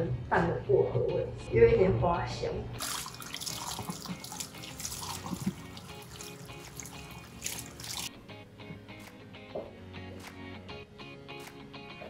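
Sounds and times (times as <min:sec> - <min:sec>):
background music: 0:00.0 - 0:12.0
spray hose water splashing on hair: 0:02.8 - 0:08.1.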